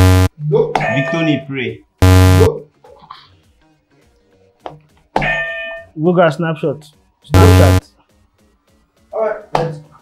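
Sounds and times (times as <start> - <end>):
electronic game-show buzzer: 0.0 - 0.3, 2.0 - 2.6, 7.3 - 7.9.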